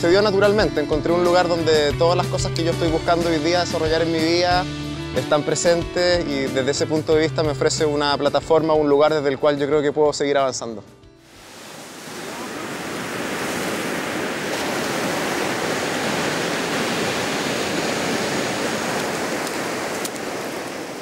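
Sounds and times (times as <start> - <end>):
ocean surf on beach: 11.3 - 21.0.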